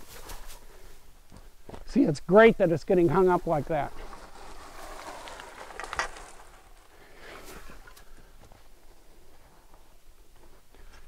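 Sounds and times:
branches rustling: 0.0 - 1.9, 3.0 - 11.0
twigs cracking: 3.8 - 8.5.

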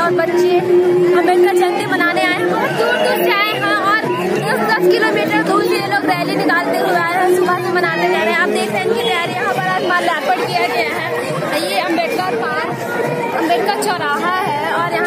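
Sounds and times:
crowd chatter: 0.0 - 15.0
woman talking: 0.0 - 15.0.

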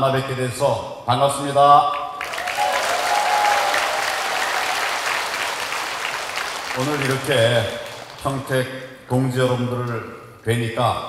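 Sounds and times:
audience applauding: 2.2 - 8.6.

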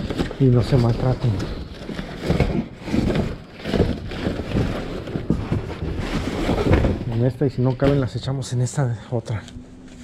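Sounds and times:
cardboard rustling and scraping: 0.0 - 8.6.

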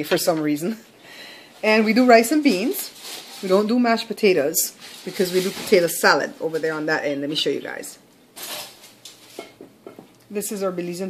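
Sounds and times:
dish scraping: 8.4 - 9.7.

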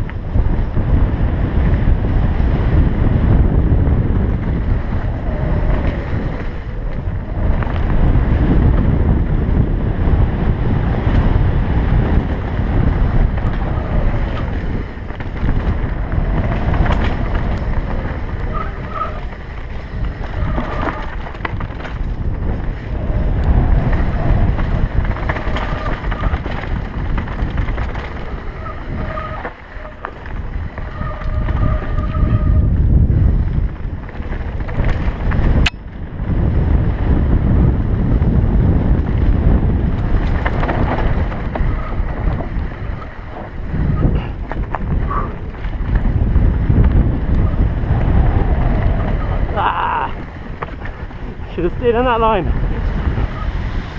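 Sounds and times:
bike rattling: 0.0 - 53.9
bike tyres rumbling on dirt: 0.0 - 53.9
wind buffeting microphone: 0.0 - 53.9.

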